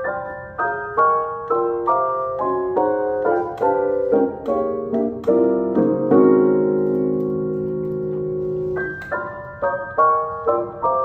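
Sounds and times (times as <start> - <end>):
jazz chords on electric piano: 0.0 - 11.0.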